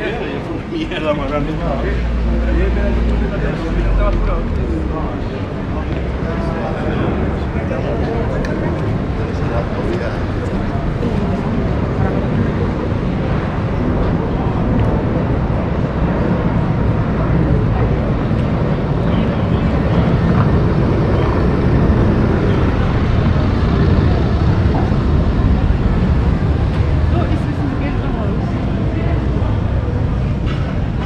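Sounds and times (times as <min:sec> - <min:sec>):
low street rumble: 0:00.0 - 0:31.0
passers-by talking: 0:00.0 - 0:31.0.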